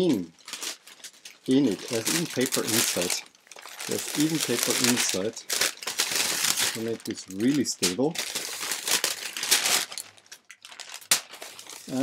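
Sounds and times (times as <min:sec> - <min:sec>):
packing paper rustling: 0:00.0 - 0:12.0
sharp paper crackle: 0:00.0 - 0:12.0.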